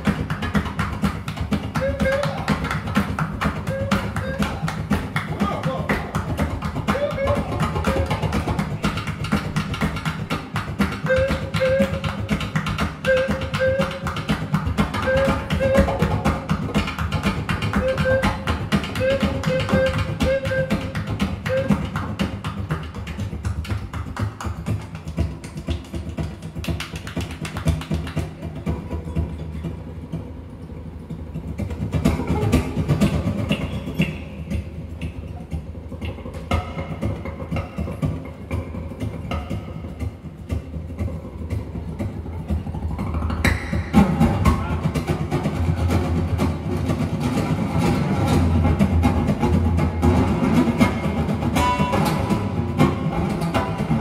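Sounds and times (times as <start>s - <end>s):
hand percussion tapping: 0.0s - 54.0s.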